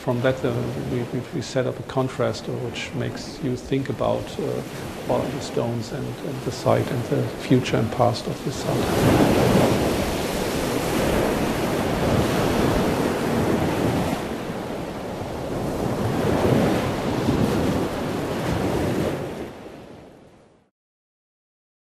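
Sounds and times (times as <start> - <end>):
surf washing on rocky shore: 0.0 - 20.1
wind buffeting microphone: 0.5 - 19.7.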